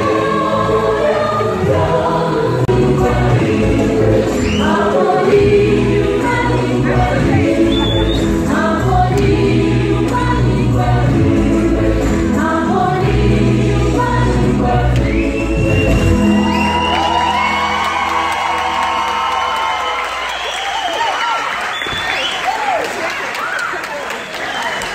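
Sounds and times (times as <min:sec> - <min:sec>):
gospel choir singing: 0:00.0 - 0:19.5
band with steady bass: 0:05.4 - 0:16.6
audience cheering: 0:15.6 - 0:24.9.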